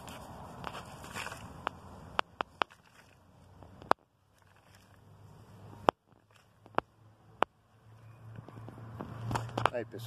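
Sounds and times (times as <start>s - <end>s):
hands crumbling soil: 0.0s - 6.9s.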